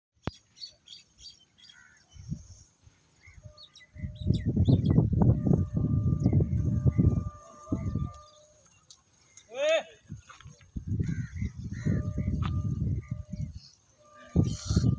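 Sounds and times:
small birds chirping: 0.2 - 5.6
gusty wind buffeting microphone: 2.1 - 8.4, 10.0 - 14.9.

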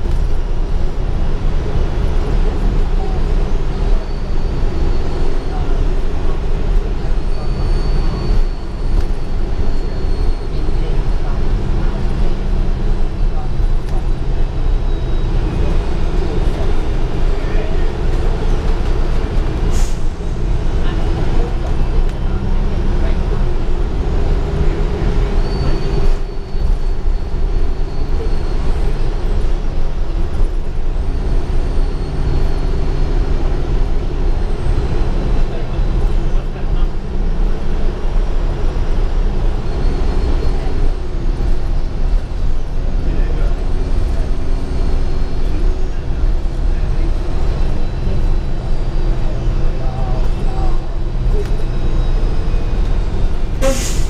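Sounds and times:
bus engine drone: 0.0 - 54.0
road rumble: 0.0 - 54.0.

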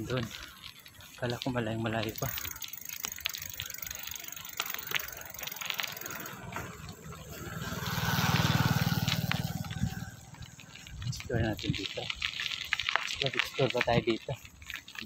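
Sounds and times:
bicycle tyres crunching on dirt: 0.0 - 15.0
bike clicks and rattles: 0.0 - 15.0
motorcycle engine passing: 4.9 - 11.1.

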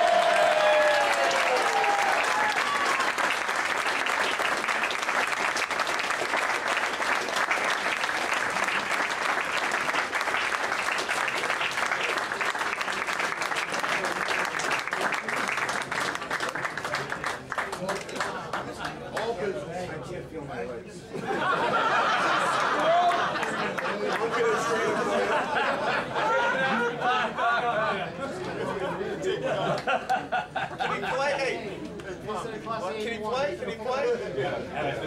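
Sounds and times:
audience applauding: 0.0 - 19.0, 22.2 - 24.8.

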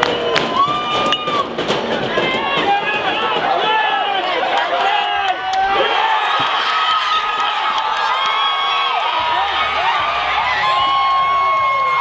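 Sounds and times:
people shouting: 0.0 - 12.0.

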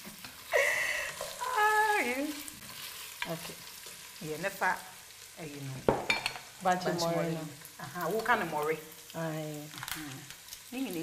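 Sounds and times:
woman exclaiming: 1.4 - 2.3.

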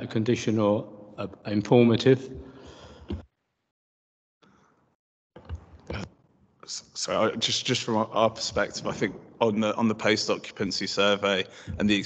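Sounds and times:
man speaking: 0.0 - 2.4, 5.9 - 12.0
man breathing softly: 2.4 - 3.2, 11.5 - 11.8.

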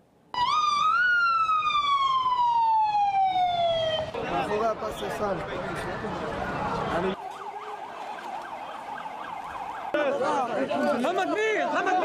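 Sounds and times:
siren wailing: 0.4 - 4.2, 5.9 - 10.0.

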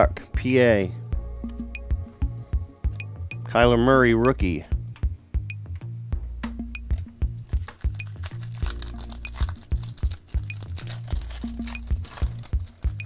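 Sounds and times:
background music with steady beat: 0.0 - 13.0
foil wrapper crinkling and tearing: 7.4 - 13.0.

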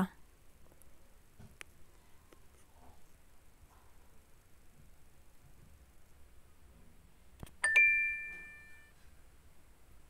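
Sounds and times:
bright two-note chime: 7.6 - 8.9.

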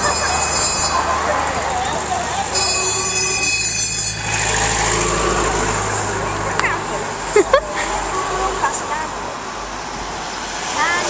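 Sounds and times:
high-pitched ringing tone: 0.0 - 4.4
trucks passing on road: 0.0 - 11.0.

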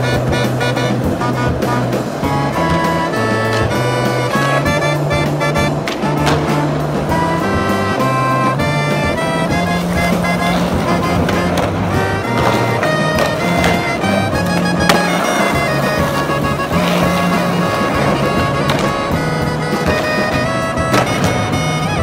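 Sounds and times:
music with moving bass line: 0.0 - 22.0
skateboard clack: 0.0 - 22.0
skateboard wheels rolling: 0.0 - 22.0.

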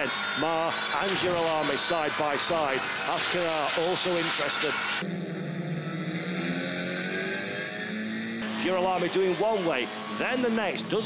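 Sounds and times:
car engine at high revs: 0.0 - 11.0.

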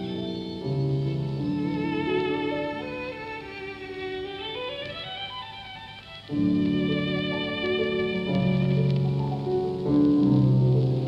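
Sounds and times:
violin melody: 0.0 - 11.0.

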